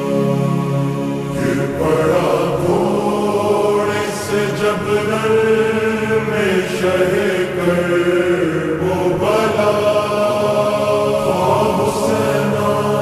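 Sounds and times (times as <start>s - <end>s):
chanted vocal lament with reverb: 0.0s - 13.0s.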